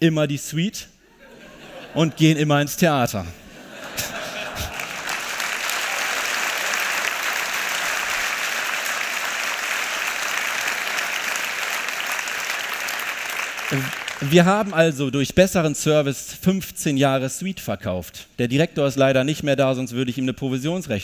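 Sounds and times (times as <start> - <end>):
large audience applauding: 4.0 - 14.8.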